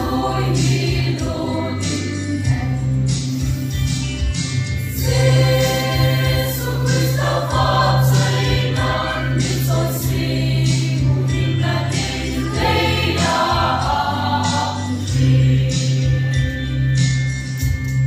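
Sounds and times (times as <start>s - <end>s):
choir singing a hymn: 0.0s - 2.9s, 5.0s - 16.4s.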